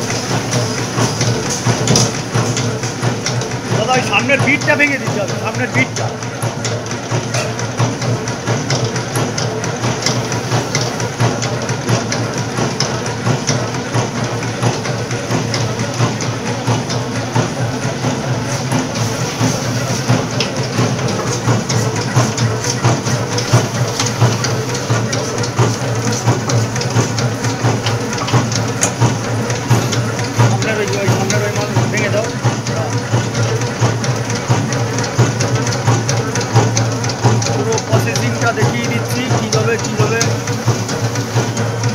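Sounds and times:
machine clattering and humming: 0:00.0 - 0:41.9.

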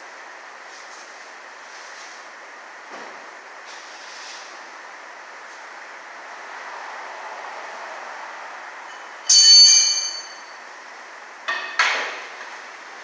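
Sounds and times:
steady shop hiss: 0:00.0 - 0:13.0
sharp metallic knocks: 0:09.3 - 0:10.5.

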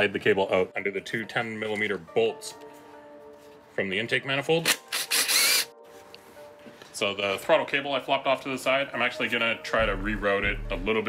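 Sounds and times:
power tool spinning burst: 0:04.7 - 0:05.7.

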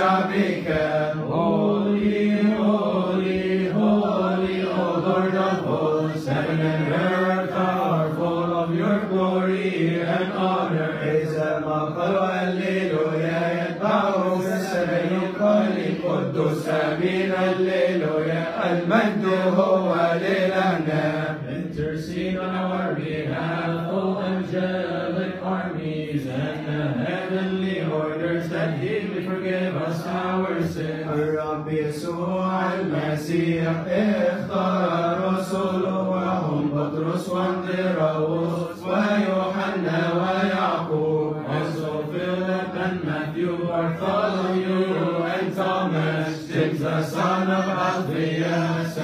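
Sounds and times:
men chanting a hymn: 0:00.0 - 0:49.0.

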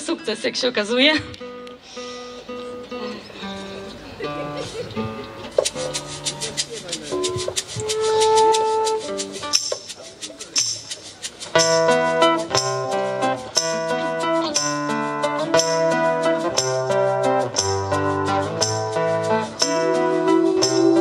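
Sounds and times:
acoustic folk band playing: 0:00.6 - 0:21.0
guitar picking: 0:01.2 - 0:21.0
percussion tick: 0:05.5 - 0:20.0.

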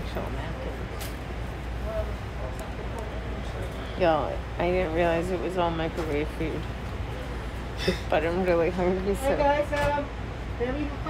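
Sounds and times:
faint voices: 0:00.0 - 0:11.0
train car rumble: 0:00.0 - 0:11.0.

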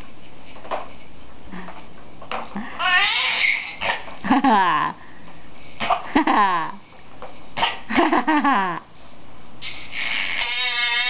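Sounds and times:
person laughing: 0:02.5 - 0:03.0, 0:04.2 - 0:05.0, 0:06.0 - 0:06.8, 0:07.9 - 0:08.9.

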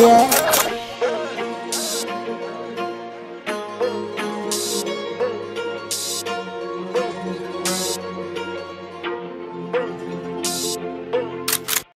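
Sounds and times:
sharp clicks: 0:00.0 - 0:00.8, 0:11.5 - 0:11.9
instrumental pop music: 0:00.0 - 0:11.7
short high hiss: 0:01.7 - 0:02.1, 0:04.5 - 0:04.9, 0:05.9 - 0:06.2, 0:07.7 - 0:08.0, 0:10.5 - 0:10.8.

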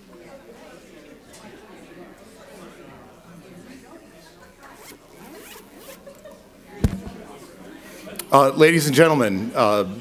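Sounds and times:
audience room noise: 0:00.0 - 0:10.0.

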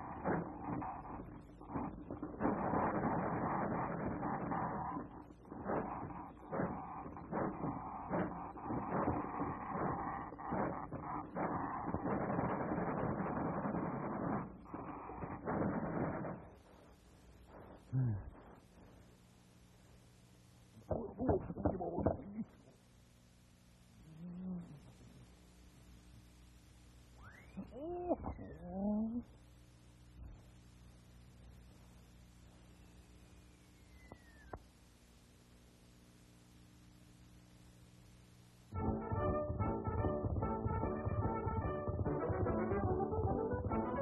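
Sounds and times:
clattering mechanical sound effects: 0:00.0 - 0:16.5
thin sliding whistle: 0:33.4 - 0:34.5.

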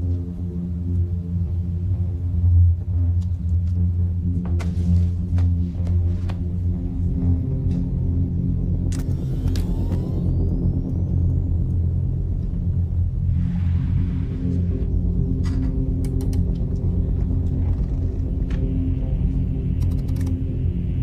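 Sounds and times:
low droning film score: 0:00.0 - 0:21.0
rising electronic whine: 0:08.0 - 0:16.0
sharp clicks: 0:19.8 - 0:20.4.

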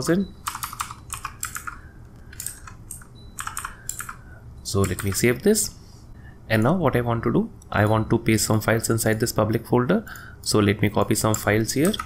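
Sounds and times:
computer keyboard typing: 0:00.4 - 0:05.4, 0:11.1 - 0:12.0.

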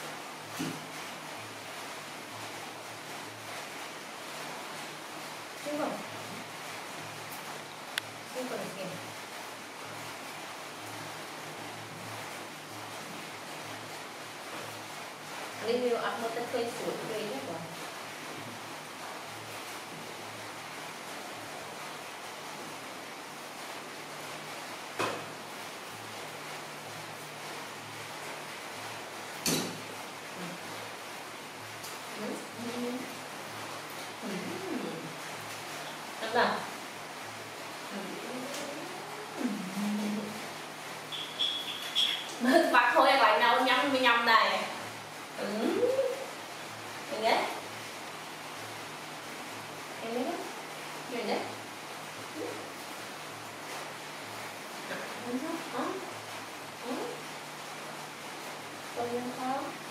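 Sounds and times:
background hiss: 0:00.0 - 0:59.9
baby monkey coo call: 0:41.1 - 0:42.4.

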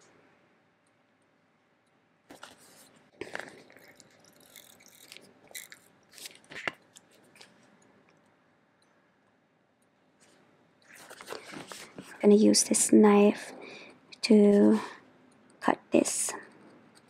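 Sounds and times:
tape crackling and rustling: 0:02.3 - 0:08.2, 0:10.2 - 0:12.2.

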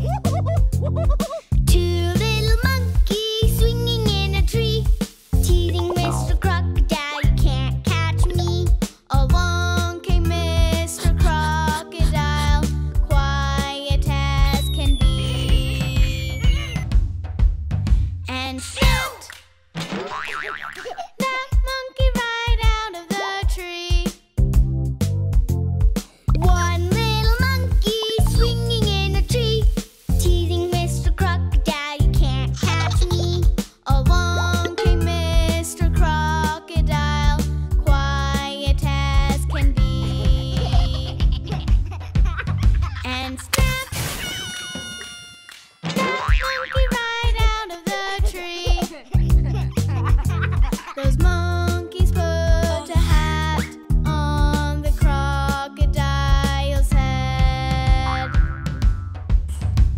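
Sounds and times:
children's music: 0:00.0 - 0:17.0, 0:18.3 - 0:19.3, 0:21.1 - 0:25.2, 0:26.0 - 0:59.6
cartoon boing: 0:05.7 - 0:06.4, 0:20.0 - 0:21.2, 0:46.0 - 0:47.0, 0:58.1 - 0:59.2
wobbling warbling tone: 0:05.7 - 0:06.5, 0:14.6 - 0:16.8, 0:34.6 - 0:35.4, 0:58.2 - 0:59.1.

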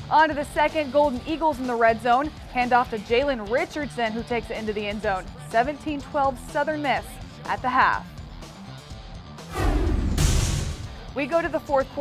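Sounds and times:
background music: 0:00.0 - 0:12.0
whoosh and boom effect: 0:09.5 - 0:11.0.

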